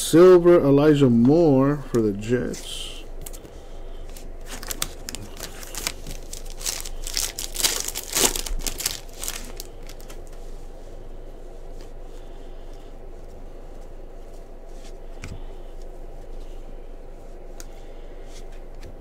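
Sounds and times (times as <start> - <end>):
plastic crinkling and rustling: 3.2 - 10.4.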